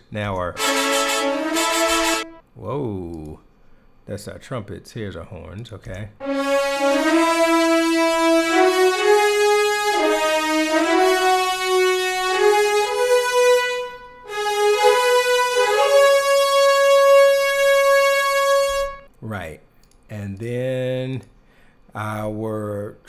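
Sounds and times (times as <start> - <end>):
french horns playing legato: 0.5 - 2.4, 6.2 - 19.1.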